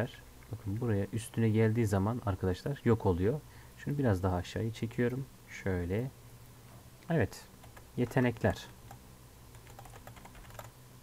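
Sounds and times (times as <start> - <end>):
faint keyboard typing: 7.6 - 10.8.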